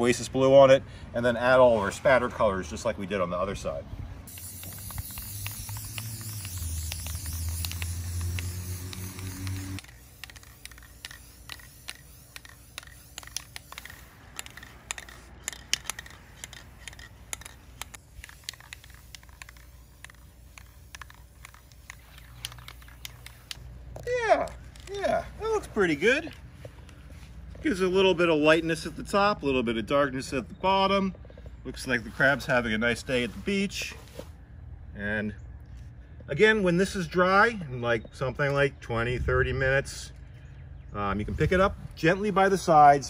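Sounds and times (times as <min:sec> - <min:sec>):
aerosol spray can hissing: 0:04.3 - 0:23.6
scattered clicks: 0:04.3 - 0:25.0.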